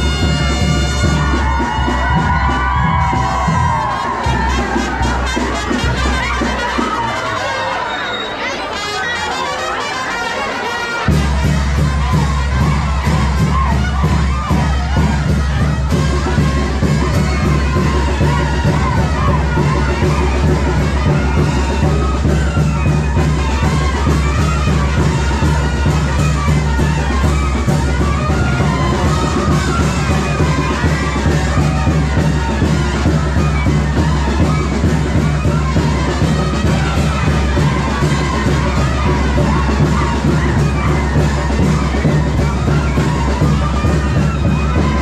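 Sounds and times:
live band music with heavy bass: 0.0 - 7.8
brass band music with deep bass: 0.0 - 45.0
crowd shouting and cheering: 0.0 - 45.0.

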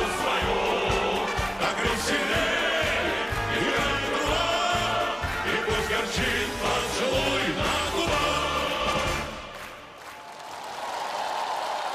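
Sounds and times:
choir singing march with brass band: 0.0 - 9.9
applause: 9.0 - 11.9.

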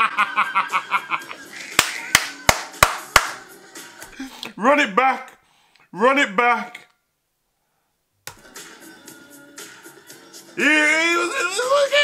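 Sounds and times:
hands clapping hard: 1.6 - 3.5.

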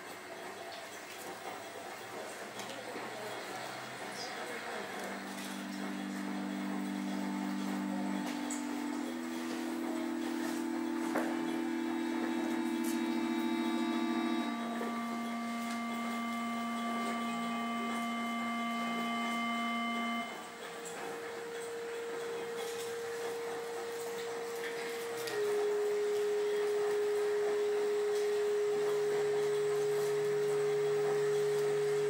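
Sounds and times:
ambient drone of held tones: 2.6 - 32.0.

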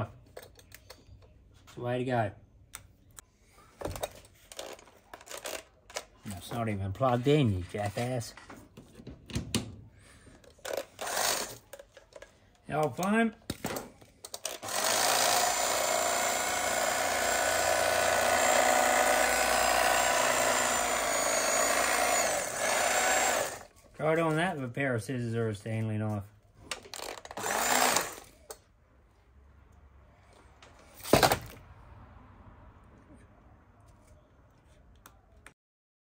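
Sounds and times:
electric knife motor buzzing: 11.0 - 11.6, 14.6 - 23.7, 27.2 - 28.3.

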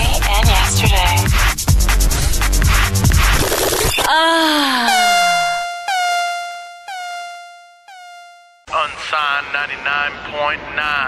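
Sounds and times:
air horn blasts: 4.6 - 8.6
speech: 8.7 - 11.0.

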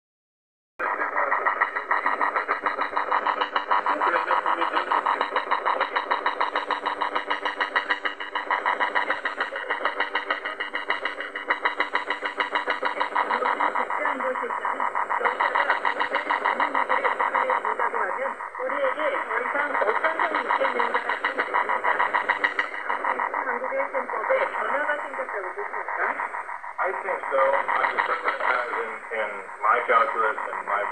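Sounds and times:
faint voice on radio: 0.8 - 2.5, 3.7 - 6.1, 12.9 - 30.9
radio jamming buzz with tones: 0.8 - 30.9.

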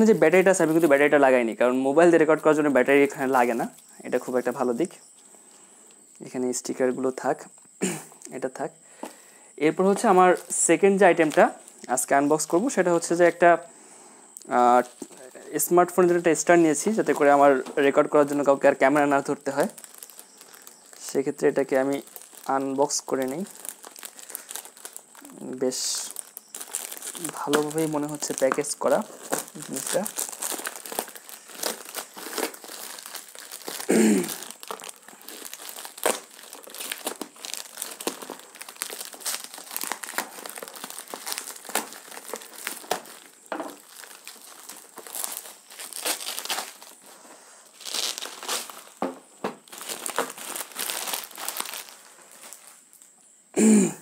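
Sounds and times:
plastic wrapping crinkling: 0.0 - 6.3, 9.0 - 13.6, 14.5 - 53.4.

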